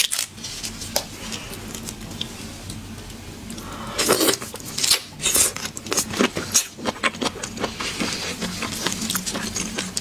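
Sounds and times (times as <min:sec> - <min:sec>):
wet mouth sucking and chewing: 0:04.0 - 0:10.0.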